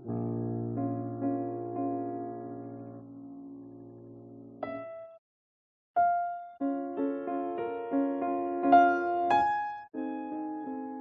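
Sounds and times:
grand piano playing slowly: 0:00.0 - 0:05.2, 0:06.0 - 0:11.0.

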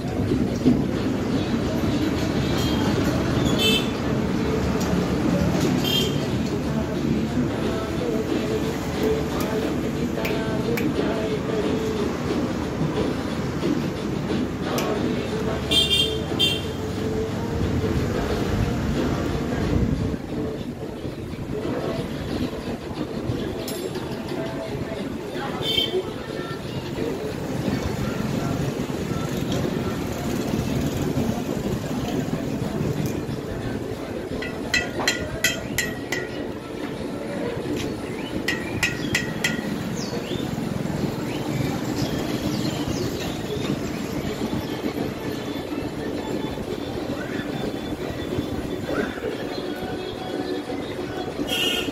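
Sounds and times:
traffic noise: 0:00.0 - 0:51.9
car horn toots: 0:15.7 - 0:16.7, 0:51.5 - 0:51.9
metal-on-metal taps: 0:34.4 - 0:36.4, 0:38.5 - 0:39.7.

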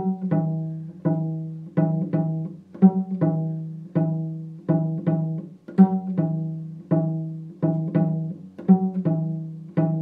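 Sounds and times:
cello plucked notes: 0:00.0 - 0:10.0.

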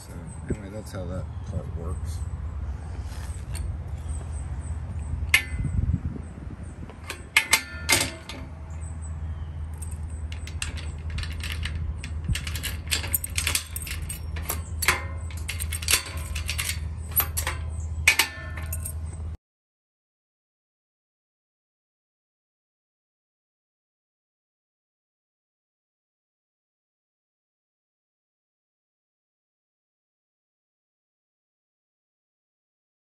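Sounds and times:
steady low rumble: 0:01.4 - 0:18.1
metal gate rattling: 0:05.0 - 0:19.4
gate lock clicks and clanks: 0:05.1 - 0:05.8, 0:06.8 - 0:19.2.

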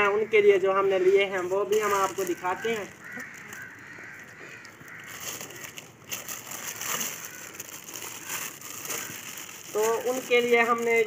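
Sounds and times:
crow cawing: 0:00.0 - 0:10.8
plastic bag rustling: 0:01.1 - 0:11.0.

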